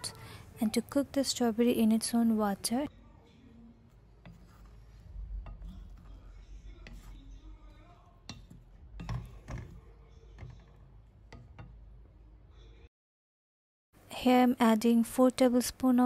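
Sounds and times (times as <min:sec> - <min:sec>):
spoon stirring strawberries: 0:00.8 - 0:12.7
spoon knocking metal pan: 0:04.2 - 0:12.1.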